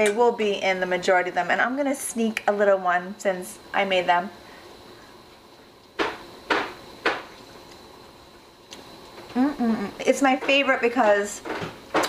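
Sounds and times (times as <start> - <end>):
woman making appreciative mm sounds: 9.3 - 10.0.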